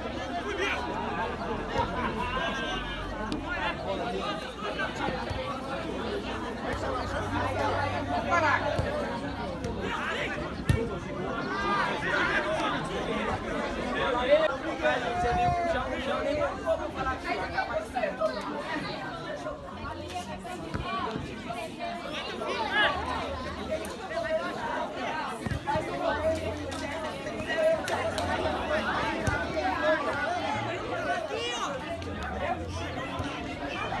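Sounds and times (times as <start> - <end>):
voices calling out: 0.0 - 34.0.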